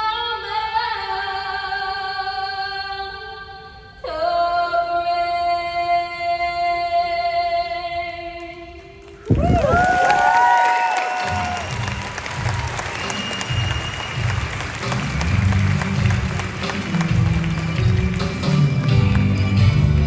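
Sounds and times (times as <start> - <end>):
crowd applauding and cheering: 9.1 - 20.0
high whistles: 9.6 - 15.2
music with steady beat: 11.5 - 20.0.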